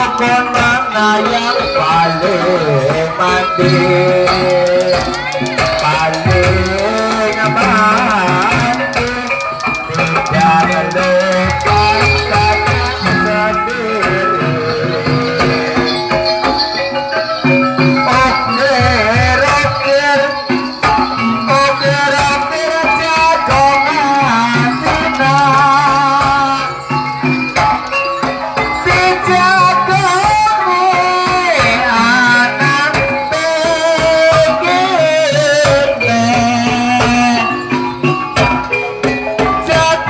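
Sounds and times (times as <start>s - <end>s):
drum strokes: 0.0s - 40.0s
jingling percussion: 0.0s - 40.0s
person singing: 0.0s - 40.0s
sliding gamelan melody: 0.0s - 40.0s.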